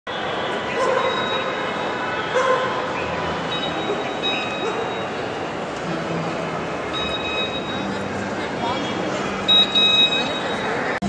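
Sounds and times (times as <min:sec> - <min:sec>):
crowd chatter echoing: 0:00.1 - 0:11.0
high bark-like yelps: 0:03.7 - 0:05.1.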